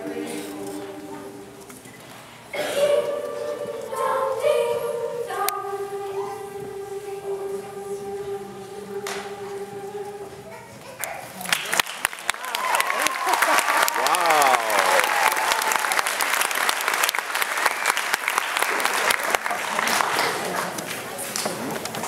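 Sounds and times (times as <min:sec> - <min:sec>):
audience applauding: 0:11.4 - 0:20.8.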